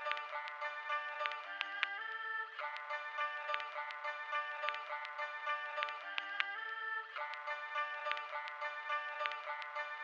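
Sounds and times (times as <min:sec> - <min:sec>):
crisp ticks: 0:00.0 - 0:06.6, 0:07.2 - 0:09.9.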